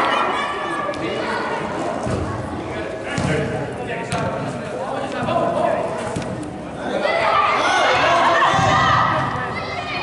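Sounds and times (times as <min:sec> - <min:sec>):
indistinct voices in echoing hall: 0:00.0 - 0:10.0.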